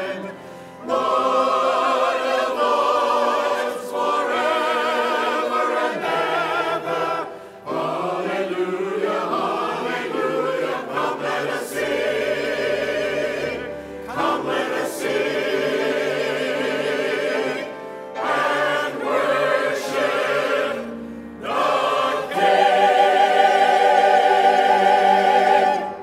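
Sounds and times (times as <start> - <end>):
choir singing: 0.0 - 26.0.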